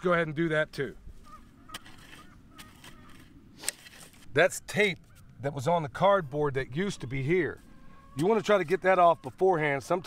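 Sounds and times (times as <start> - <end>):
distant bird calls: 1.0 - 10.0.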